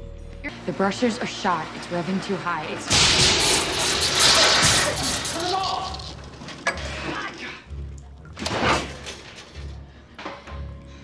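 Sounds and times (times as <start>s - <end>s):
low music: 0.0s - 11.0s
electrical sparks crackling: 1.8s - 6.5s.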